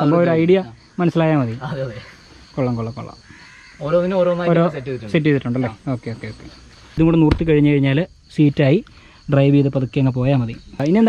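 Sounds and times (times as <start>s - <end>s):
man talking: 3.8s - 11.0s.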